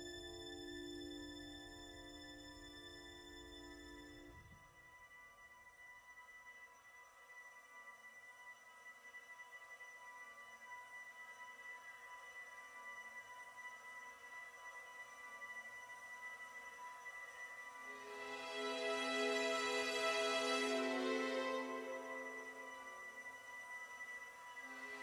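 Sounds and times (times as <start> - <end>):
quiet electronic music: 0.0 - 25.0.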